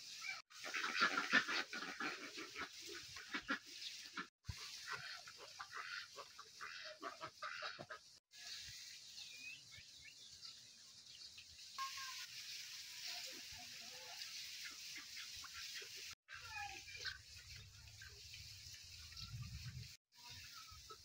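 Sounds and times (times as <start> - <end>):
domestic fowl calling: 0.3 - 8.2.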